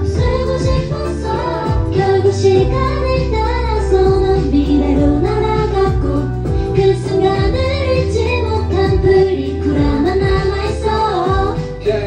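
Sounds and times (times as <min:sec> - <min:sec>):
bass-heavy backing track: 0:00.0 - 0:12.0
woman singing into microphone: 0:00.0 - 0:12.0.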